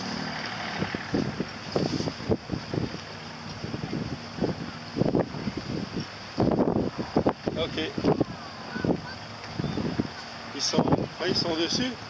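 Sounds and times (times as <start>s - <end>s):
outboard motor hum: 0.0s - 12.0s
wind buffeting microphone: 0.0s - 12.0s.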